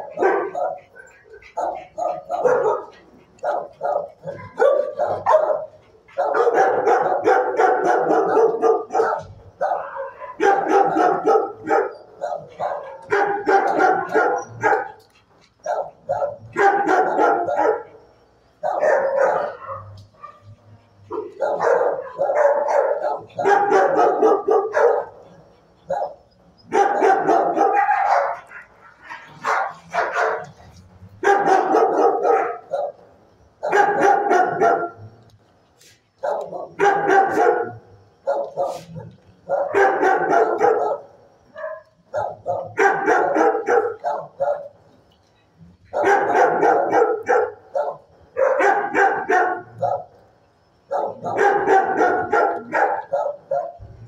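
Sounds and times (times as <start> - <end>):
dog barking: 0.0 - 35.1, 36.2 - 44.8, 45.8 - 50.2, 50.8 - 54.0.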